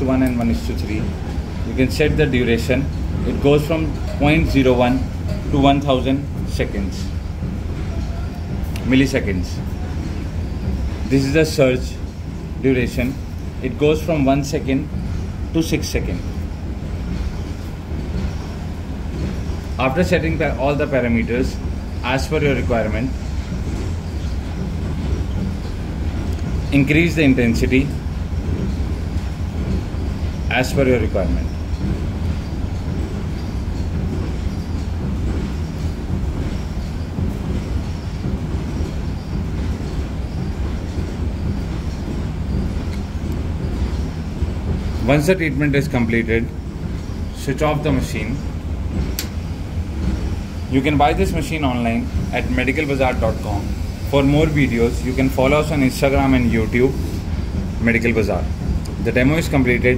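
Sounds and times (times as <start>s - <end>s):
steady low hum with rumble: 0.0s - 59.9s.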